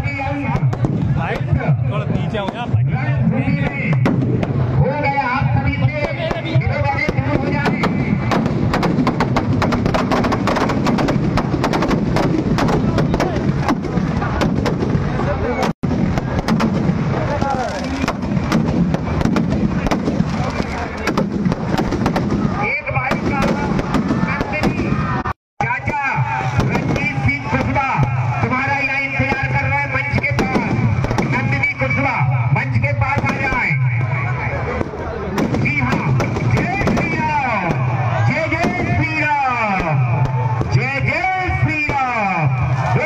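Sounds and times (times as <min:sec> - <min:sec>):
firecrackers crackling: 0:00.1 - 0:04.8, 0:05.8 - 0:43.0.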